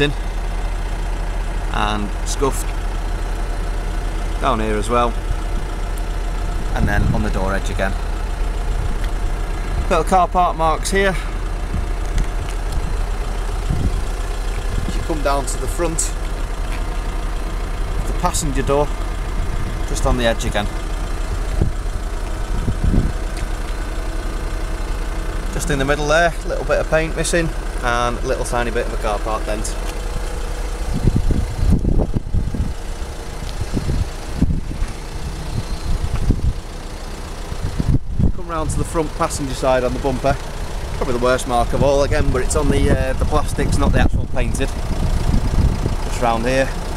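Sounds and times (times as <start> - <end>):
steady low rumble: 0.0 - 46.9
wind buffeting microphone: 6.5 - 7.8, 11.6 - 15.6, 21.2 - 23.7, 30.8 - 36.7, 37.6 - 38.4, 41.6 - 46.2.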